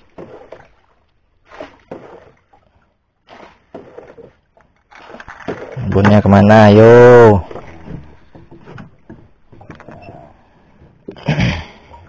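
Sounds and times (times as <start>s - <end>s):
water splashing against boat hull: 0.0s - 12.0s.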